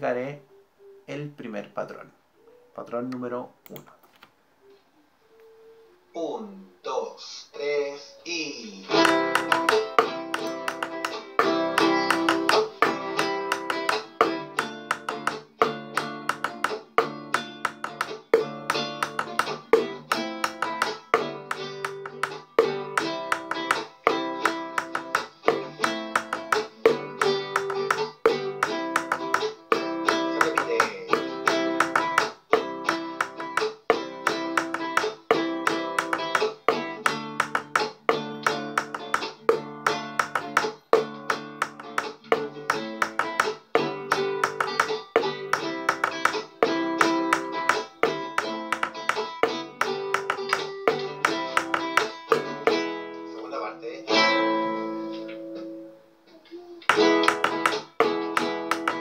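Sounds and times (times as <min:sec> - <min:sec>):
acoustic guitar strumming chords: 0:08.8 - 0:56.2, 0:56.9 - 0:59.0.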